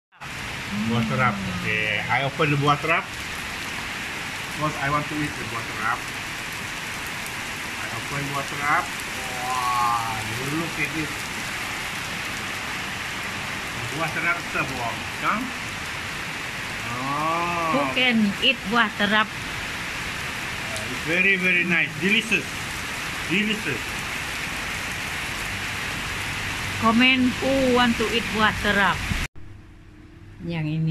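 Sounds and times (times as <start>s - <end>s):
steady hiss: 0.2s - 6.1s, 7.8s - 18.0s, 20.1s - 24.0s
steady rain falling: 0.2s - 29.3s.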